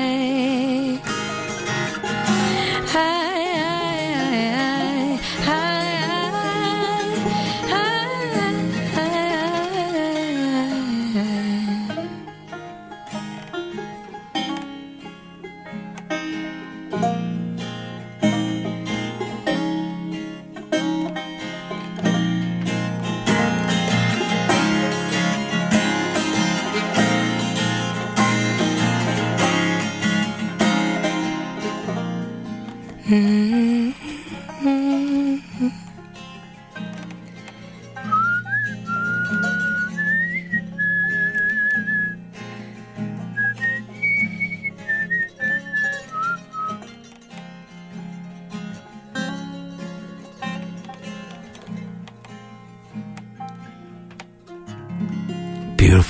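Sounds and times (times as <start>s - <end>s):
acoustic folk string band: 0.0s - 56.0s
whistled melody: 38.0s - 42.2s, 43.3s - 46.9s.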